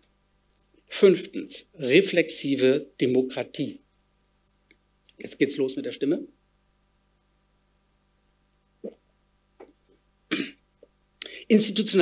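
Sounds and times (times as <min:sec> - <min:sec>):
man clearing his throat: 0:10.3 - 0:10.6
man coughing: 0:10.3 - 0:10.6.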